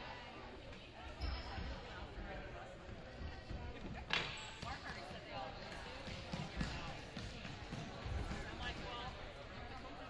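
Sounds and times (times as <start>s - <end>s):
people chattering indistinctly: 0.0s - 10.0s.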